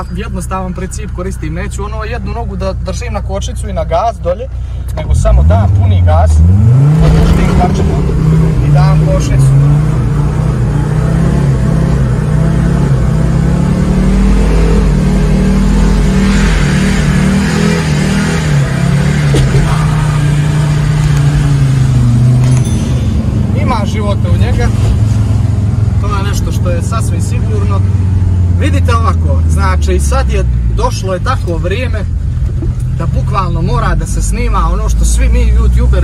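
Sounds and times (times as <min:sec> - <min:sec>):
car engine revving high: 0:05.1 - 0:31.4.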